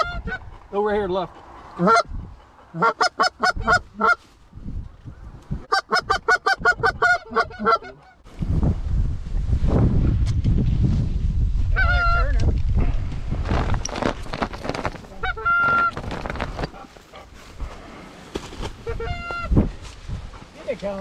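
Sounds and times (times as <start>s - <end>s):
goose honking: 1.8s - 2.1s, 2.7s - 4.2s, 5.7s - 8.2s, 15.2s - 16.0s, 18.8s - 19.5s.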